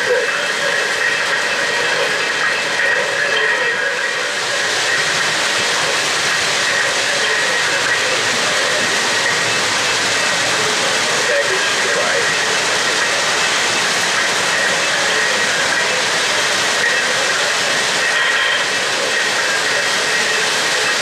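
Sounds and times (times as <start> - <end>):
model steam locomotive hiss: 0.0 - 21.0
model train wheels rumbling: 0.0 - 21.0.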